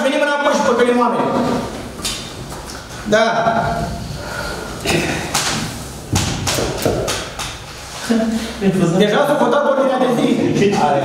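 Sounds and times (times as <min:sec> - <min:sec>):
sharp knocks and thumps: 0:04.9 - 0:07.7.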